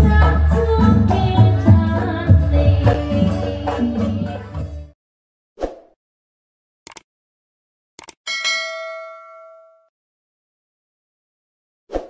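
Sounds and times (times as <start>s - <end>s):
notification bell ding: 8.3s - 9.9s.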